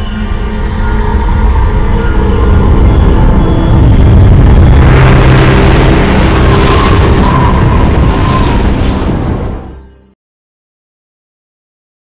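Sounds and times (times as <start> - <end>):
rising whoosh of noise: 0.0 - 9.9
deep rumble: 0.0 - 10.1.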